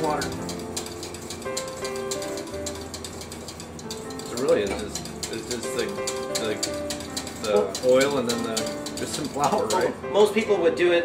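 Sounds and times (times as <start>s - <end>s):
metal whisk scraping saucepan: 0.0s - 10.6s.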